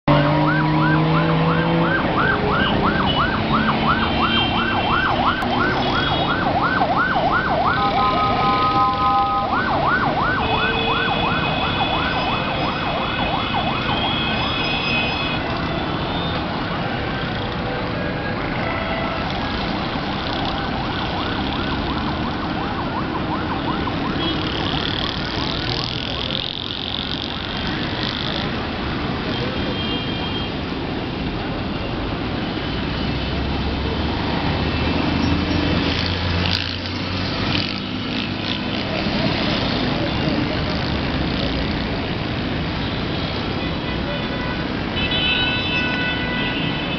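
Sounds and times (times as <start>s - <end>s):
road traffic: 0.0s - 46.9s
emergency siren yelping: 0.1s - 15.2s, 19.4s - 26.6s
vehicle horns: 13.4s - 16.4s, 43.2s - 46.9s.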